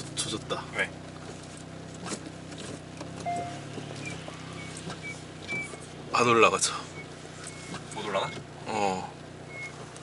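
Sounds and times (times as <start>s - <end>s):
car engine running at low revs: 0.0s - 10.0s
short high squeaks: 3.2s - 6.0s, 6.8s - 8.4s, 9.4s - 9.9s.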